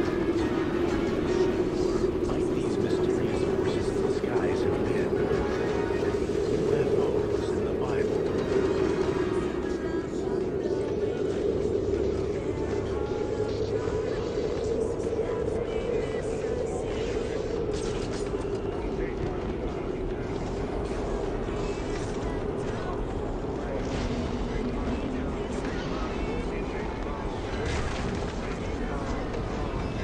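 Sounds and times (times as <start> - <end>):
faint indistinct voices: 0.0 - 30.0
low droning rumble: 0.0 - 30.0.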